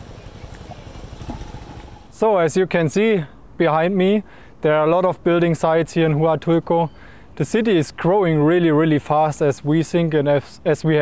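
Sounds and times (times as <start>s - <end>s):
small motorcycle engine idling: 0.0s - 2.2s.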